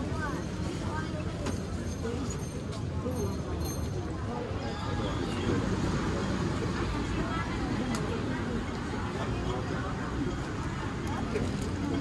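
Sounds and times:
indistinct crowd chatter: 0.0 - 12.0
road traffic rumble: 0.0 - 12.0.

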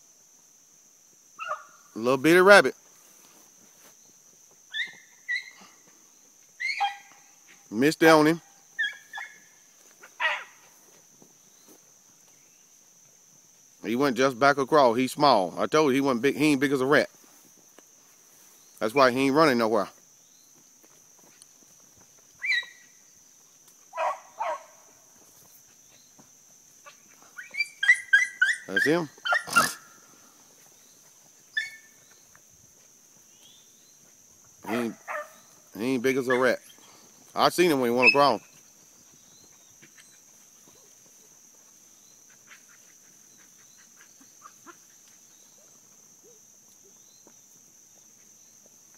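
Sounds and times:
crickets chirping drone: 0.0 - 48.9
dog barking: 1.4 - 1.7, 10.1 - 10.6, 24.0 - 24.8, 27.8 - 29.8, 34.6 - 35.4
hound yelping: 1.4 - 1.8, 4.7 - 5.7, 6.6 - 7.4, 8.8 - 10.7, 22.4 - 22.9, 23.9 - 24.8, 26.8 - 30.0, 31.5 - 32.0, 34.6 - 35.5, 36.2 - 36.8, 38.0 - 38.5.

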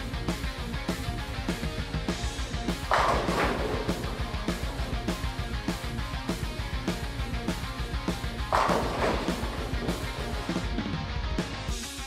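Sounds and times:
rock music with guitar: 0.0 - 12.0
bowling ball crashing into pins: 2.7 - 10.9.

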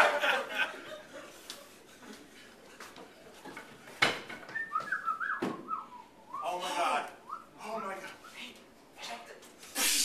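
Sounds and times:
person whistling: 4.5 - 6.5.

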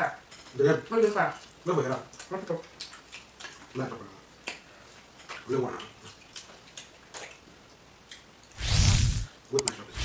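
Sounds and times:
mouth and finger clicks eating: 2.1 - 3.8.

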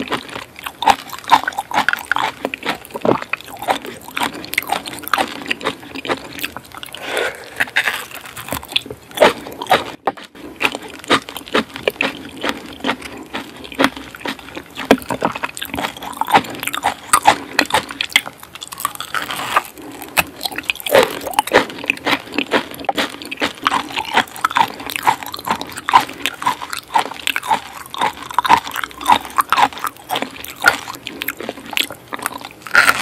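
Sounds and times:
chewing and wet mouth sounds: 0.0 - 33.0.

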